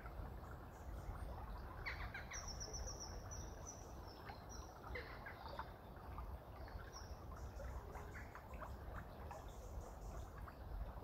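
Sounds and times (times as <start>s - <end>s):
low outdoor background noise: 0.0s - 11.0s.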